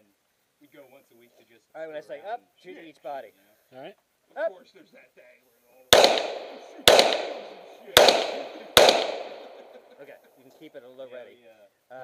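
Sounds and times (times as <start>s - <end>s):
pistol shots with echo: 5.9s - 10.0s
person laughing: 9.5s - 10.0s.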